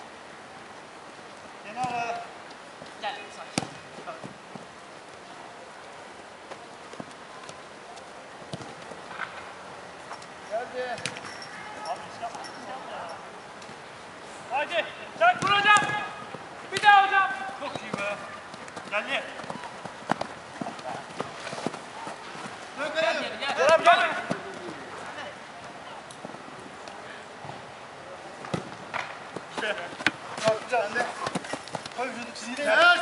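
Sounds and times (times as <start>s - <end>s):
players shouting and calling: 1.6s - 33.0s.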